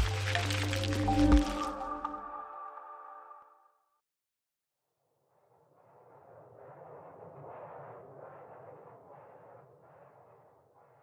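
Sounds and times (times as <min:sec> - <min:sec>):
logo intro music: 0:00.0 - 0:03.0.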